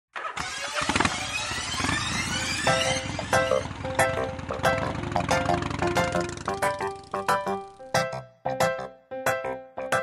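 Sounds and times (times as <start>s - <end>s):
vehicle engine starting and revving: 0.1s - 7.1s
music: 2.7s - 10.0s.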